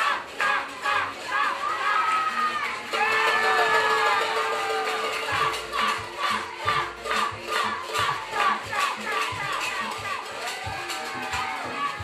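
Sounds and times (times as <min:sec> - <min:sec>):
crowd shouting and cheering: 0:00.0 - 0:12.0
rhythmic crowd cheer: 0:00.0 - 0:12.0.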